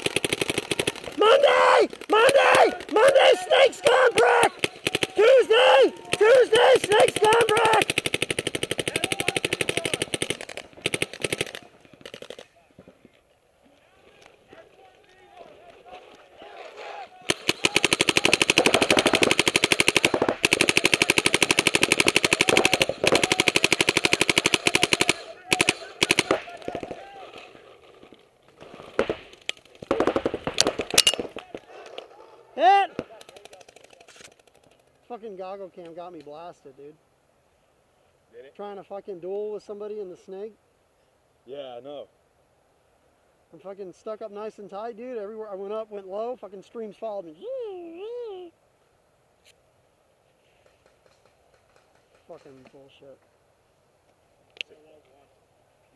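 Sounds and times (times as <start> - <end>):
paintball markers firing: 6.0 - 12.5, 17.3 - 27.0, 28.8 - 31.7.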